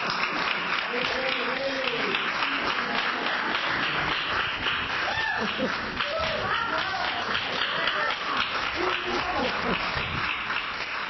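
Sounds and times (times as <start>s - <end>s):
people applauding: 0.0s - 11.0s.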